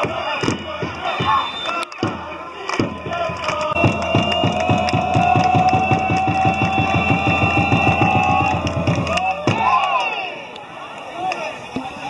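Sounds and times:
drum roll: 2.0s - 10.0s.

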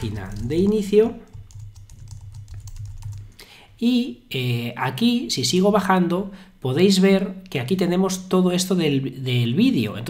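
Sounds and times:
typing on keyboard: 0.0s - 3.3s.

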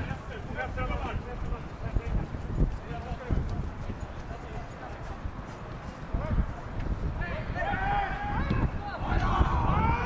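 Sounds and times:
footballers calling out: 0.0s - 10.0s.

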